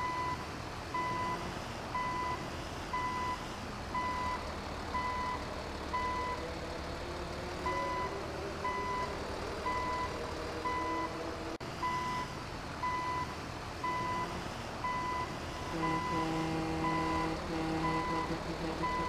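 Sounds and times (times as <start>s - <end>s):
reversing alarm beeps: 1.0s - 1.4s, 2.0s - 2.4s, 3.0s - 3.4s, 4.0s - 4.4s, 7.7s - 9.1s, 9.7s - 10.1s, 10.7s - 11.1s, 11.8s - 16.2s.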